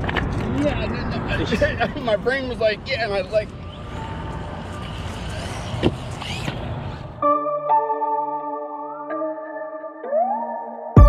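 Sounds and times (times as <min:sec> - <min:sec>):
electric motor whining: 0:03.5 - 0:07.2.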